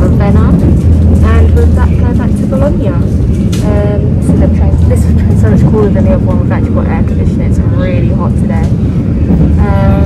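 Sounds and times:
woman talking: 0.0 - 8.8, 9.6 - 10.0
train rumbling: 0.0 - 10.0.

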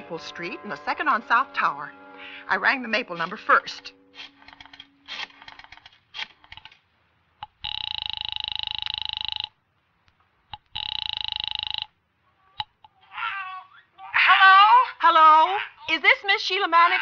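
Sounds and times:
rotary dial clicks: 7.4 - 9.6, 10.5 - 11.9
telephone ringing: 7.4 - 9.6, 10.6 - 12.0.

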